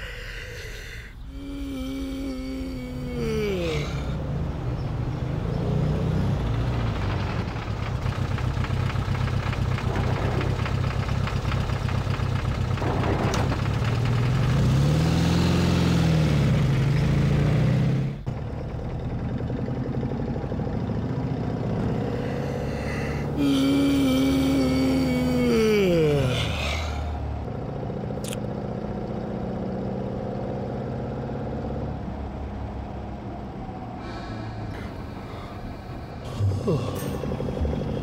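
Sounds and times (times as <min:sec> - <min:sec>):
engine humming: 0:00.0 - 0:38.0.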